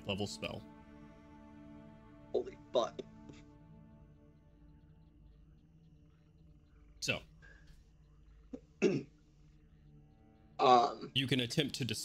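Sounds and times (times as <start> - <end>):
person clearing throat: 8.6 - 9.1.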